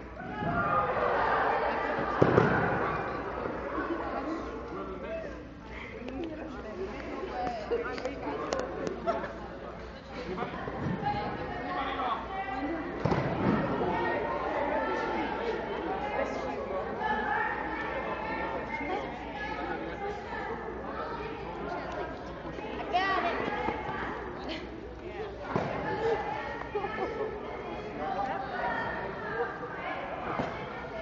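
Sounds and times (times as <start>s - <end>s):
chatter of many voices: 0.0s - 31.0s
young people talking: 0.0s - 31.0s.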